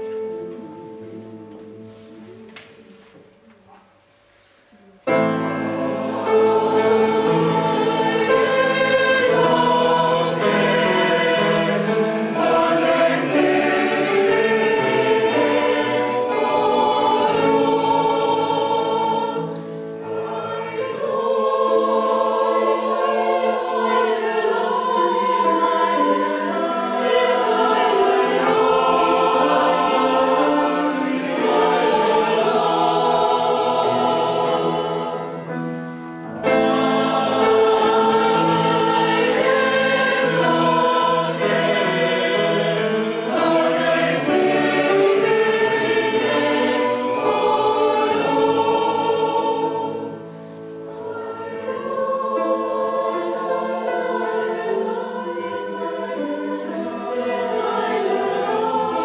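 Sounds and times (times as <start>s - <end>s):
polyphonic choir singing: 0.0s - 59.0s.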